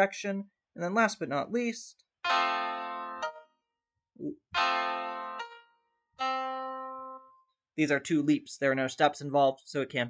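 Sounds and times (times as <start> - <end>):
keyboard chords: 2.2 - 7.6.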